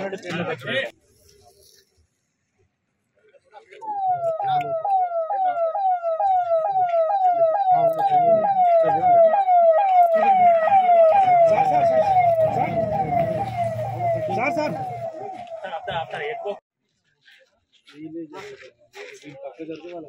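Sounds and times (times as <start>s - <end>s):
siren wailing: 3.8s - 16.6s
vehicle engines rumbling: 5.6s - 16.6s.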